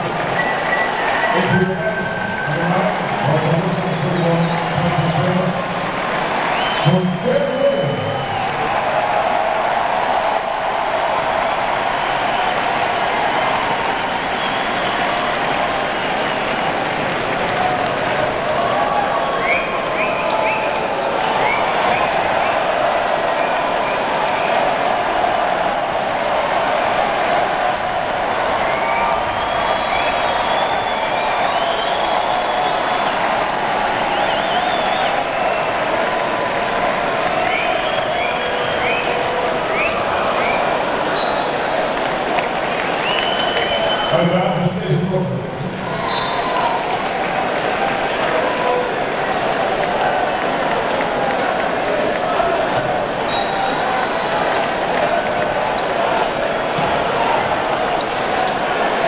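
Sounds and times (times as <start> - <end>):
crowd cheering and clapping: 0.0 - 59.0.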